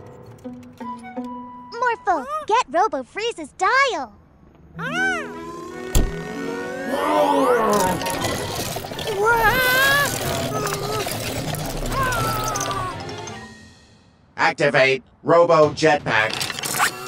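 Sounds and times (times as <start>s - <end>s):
high-pitched cartoon vocal sounds: 1.8s - 2.7s, 4.7s - 13.2s, 16.7s - 17.0s
cartoon action music: 4.8s - 13.5s.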